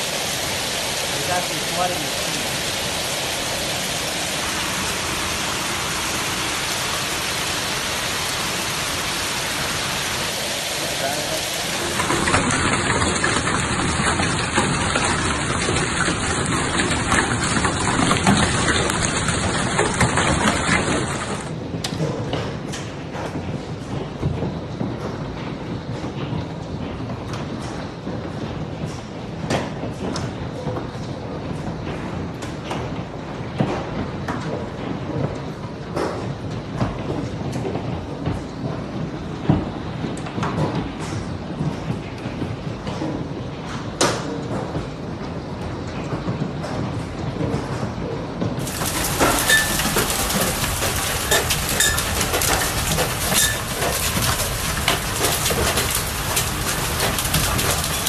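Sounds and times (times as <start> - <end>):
hailstones splashing into water: 0.0 - 21.5, 48.6 - 58.0
hail pelting the ground: 0.0 - 21.9, 48.6 - 58.0.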